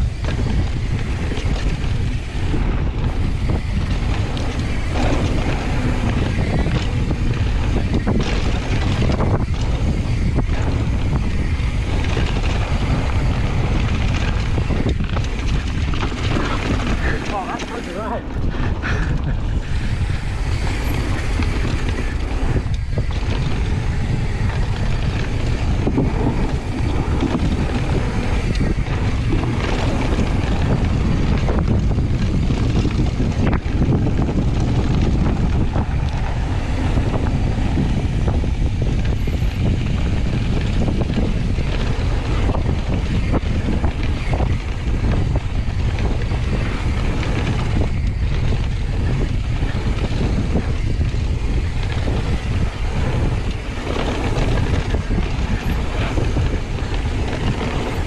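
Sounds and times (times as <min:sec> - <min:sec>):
mountain bike rolling on dirt trail: 0:00.0 - 0:58.0
wind buffeting microphone: 0:00.0 - 0:58.0.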